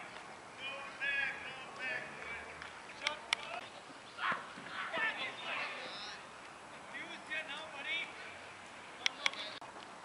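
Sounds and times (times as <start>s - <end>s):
distant voices calling out: 0.0s - 9.7s
open-air hum: 0.0s - 10.0s.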